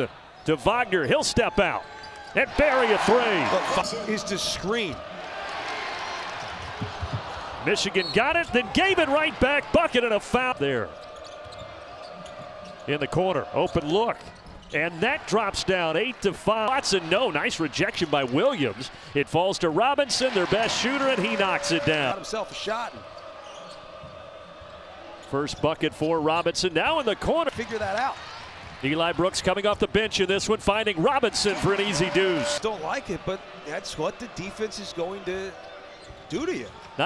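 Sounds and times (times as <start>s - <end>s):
arena crowd noise: 0.0s - 37.0s
basketball bouncing on hardwood: 6.6s - 7.4s.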